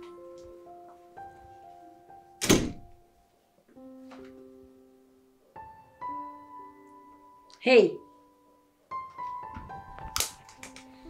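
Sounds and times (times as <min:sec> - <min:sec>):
soft piano music: 0:00.0 - 0:11.0.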